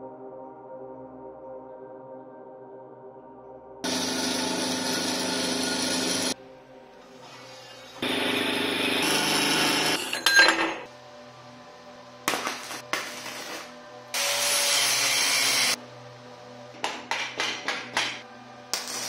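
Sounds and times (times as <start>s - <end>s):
band saw cutting steel: 3.8s - 6.4s, 7.0s - 10.2s, 14.2s - 15.8s
welding crackling: 12.4s - 13.7s, 18.8s - 19.0s.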